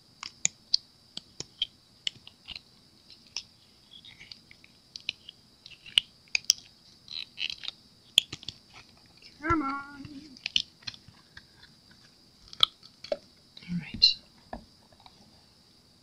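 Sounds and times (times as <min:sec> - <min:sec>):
silicone mould clicks and crackles: 0:00.2 - 0:09.3, 0:10.0 - 0:13.3.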